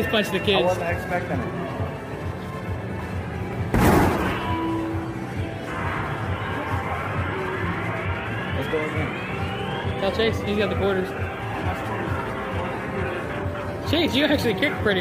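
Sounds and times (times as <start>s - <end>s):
arcade music: 0.0s - 15.0s.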